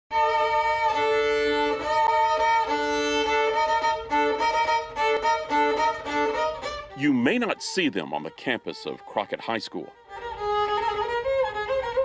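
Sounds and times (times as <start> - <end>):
violins playing a melody: 0.1 - 12.0.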